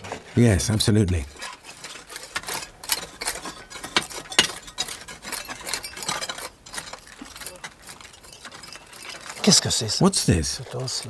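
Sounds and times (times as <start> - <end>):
hand tools scraping stony soil: 0.0 - 11.0.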